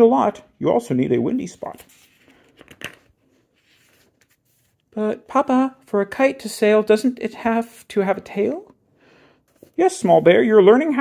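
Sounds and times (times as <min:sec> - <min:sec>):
book page turning: 0:01.4 - 0:04.9, 0:09.5 - 0:10.4.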